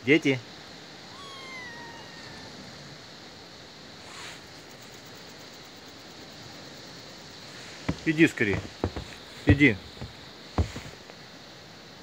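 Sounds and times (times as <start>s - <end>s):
low background hiss: 0.0s - 12.0s
kitten meow: 1.0s - 2.9s
soft rustle: 3.9s - 5.4s, 7.3s - 11.2s.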